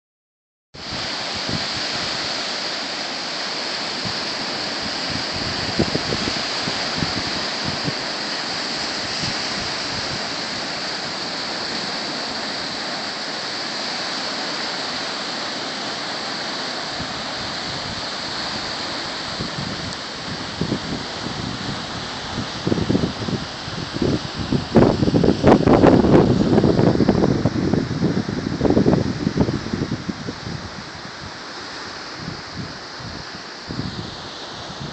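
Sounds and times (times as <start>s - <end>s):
surf breaking on rocky shore: 0.8s - 34.9s
wind gusts on microphone: 0.8s - 34.9s.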